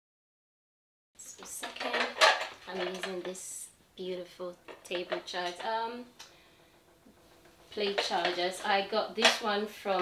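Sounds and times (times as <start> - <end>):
woman speaking: 1.2 - 6.1, 7.7 - 10.0.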